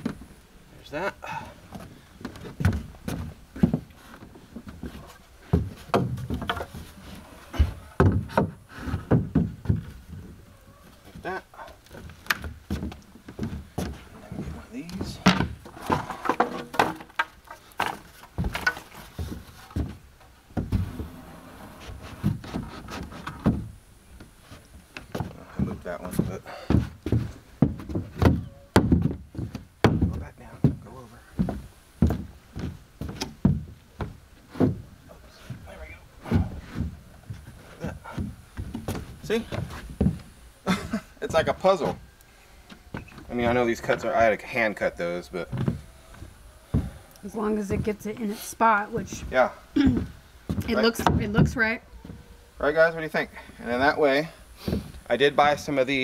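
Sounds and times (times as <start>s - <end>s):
footsteps on plywood: 1.7s - 10.4s, 11.0s - 40.3s, 45.5s - 47.0s, 48.9s - 52.3s, 54.6s - 55.0s
wooden boards knocking: 8.0s - 9.9s, 15.1s - 20.0s, 26.7s - 30.8s.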